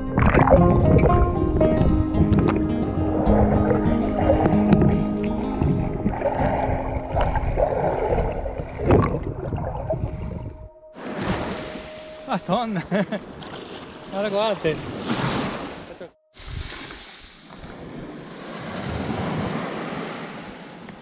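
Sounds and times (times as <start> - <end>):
soft background music: 0.0 - 14.7
sea water churning: 0.0 - 21.0.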